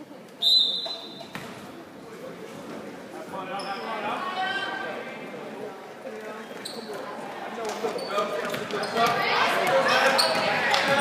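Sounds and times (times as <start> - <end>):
sneakers squeaking: 0.4 - 1.8, 3.5 - 3.9, 6.4 - 7.0, 7.7 - 11.0
spectators' voices echoing: 1.0 - 11.0.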